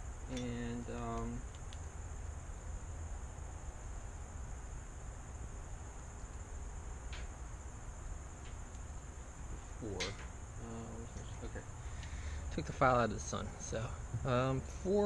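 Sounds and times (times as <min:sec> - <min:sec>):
insects droning: 0:00.0 - 0:15.0.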